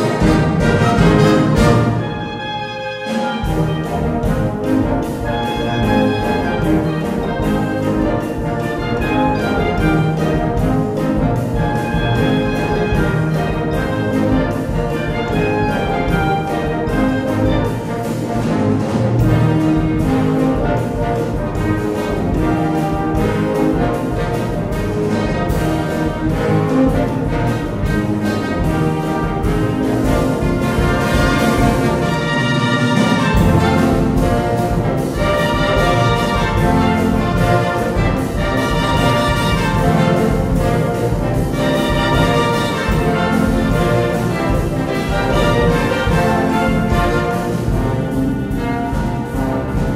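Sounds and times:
trumpets and trombones: 0.0 - 49.9
wind band playing latin music: 0.0 - 49.9.

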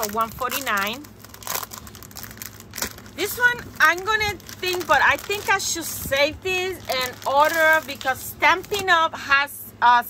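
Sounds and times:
plastic packaging crinkling: 0.0 - 9.0.

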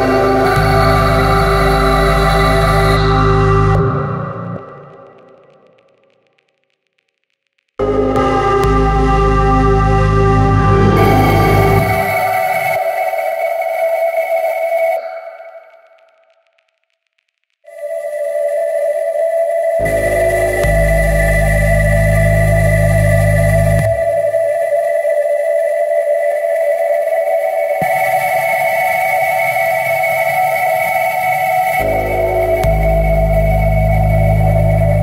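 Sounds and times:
electronic drone of held tones: 0.0 - 6.3, 7.8 - 12.8, 19.8 - 24.8, 27.8 - 35.0
faint flickering ticks: 4.6 - 8.8, 15.0 - 17.8.

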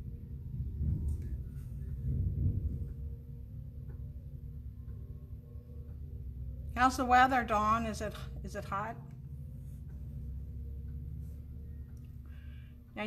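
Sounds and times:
faint steady hum: 0.0 - 13.0
low uneven rumble: 0.0 - 13.0.

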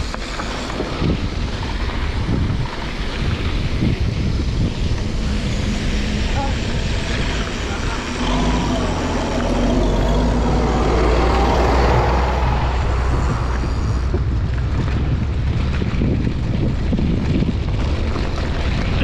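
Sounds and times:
wind on microphone: 0.0 - 19.0
heavy diesel engine droning: 4.2 - 16.1.

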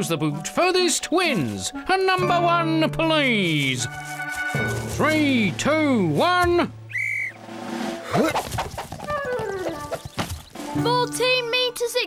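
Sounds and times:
referee's whistle blast: 6.9 - 7.4.

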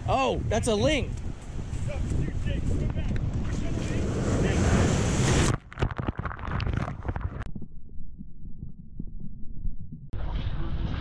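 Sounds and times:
surf rushing over rocks: 3.5 - 5.6
knocks of camera tumbling: 5.5 - 7.7.

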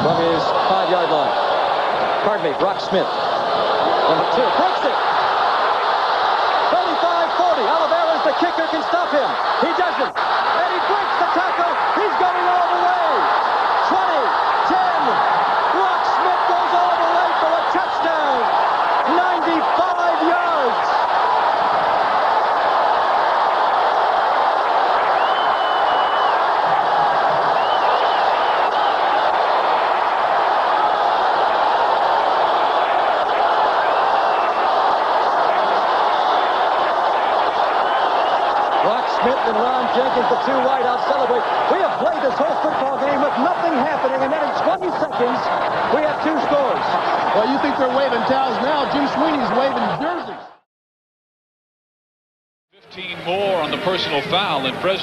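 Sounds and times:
stadium crowd cheering: 0.0 - 50.6, 52.8 - 55.0.

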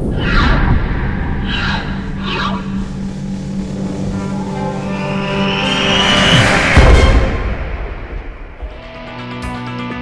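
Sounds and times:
airy whooshes: 0.0 - 8.6
low rumble: 0.0 - 8.8
steady low drone: 0.0 - 9.4.

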